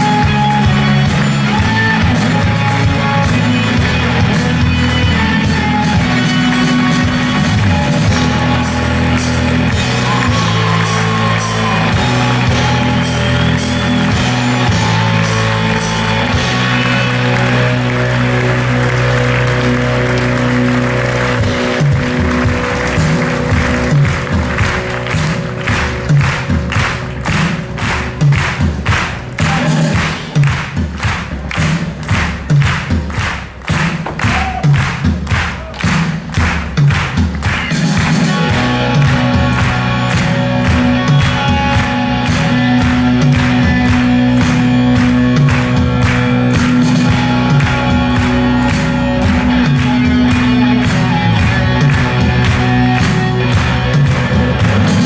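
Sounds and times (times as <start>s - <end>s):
audience applause: 0.0s - 55.0s
live rock band playing: 0.0s - 55.0s.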